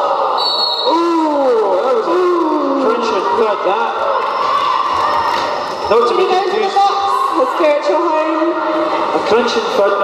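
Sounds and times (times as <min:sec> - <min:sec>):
crowd chattering and cheering: 0:00.0 - 0:10.0.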